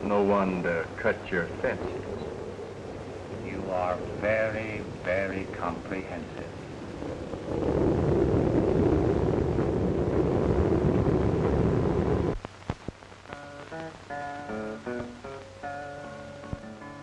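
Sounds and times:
rain: 0.0 - 17.0
thunder: 1.6 - 12.4.

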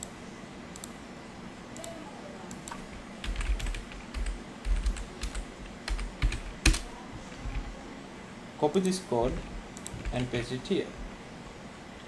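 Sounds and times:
computer keyboard typing: 2.5 - 7.7, 8.8 - 11.1.

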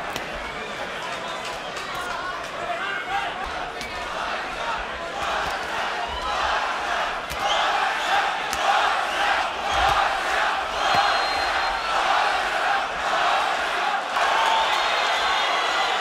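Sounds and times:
crowd shouting and chanting: 0.0 - 16.0.

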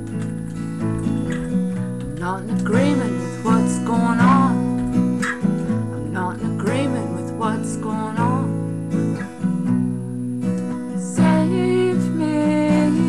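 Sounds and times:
acoustic guitar strumming: 0.0 - 13.0
woman singing: 2.0 - 8.7, 10.9 - 13.0.

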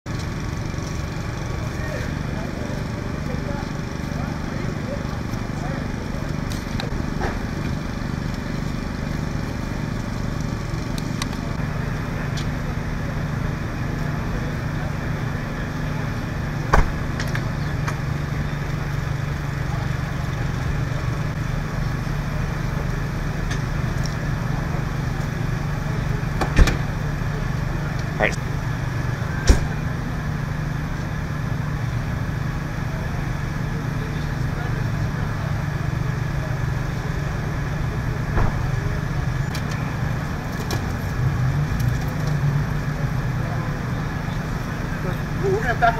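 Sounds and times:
engine idling drone: 0.1 - 45.9.

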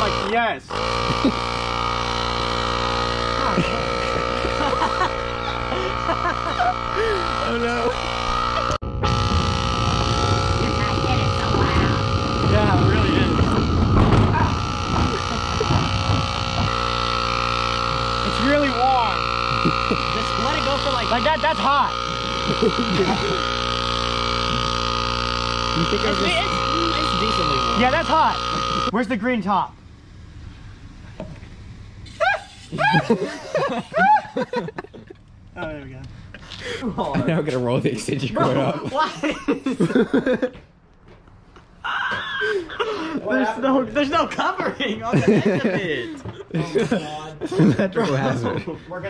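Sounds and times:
air compressor humming: 0.0 - 40.9
young people laughing: 1.1 - 1.5, 3.4 - 8.8, 14.3 - 16.9, 19.4 - 23.7, 25.8 - 29.0, 32.2 - 35.2, 36.4 - 40.7, 41.8 - 49.0.

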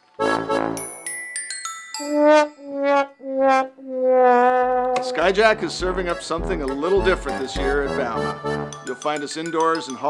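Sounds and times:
brass instrument notes: 0.2 - 1.0, 2.0 - 8.8.

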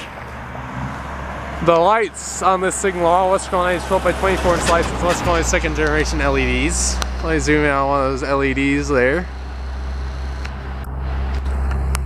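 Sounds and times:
road traffic rumbling: 0.0 - 12.0.

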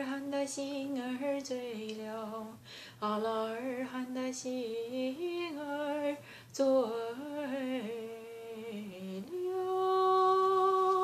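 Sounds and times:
woman singing wordless melody: 0.0 - 11.0.

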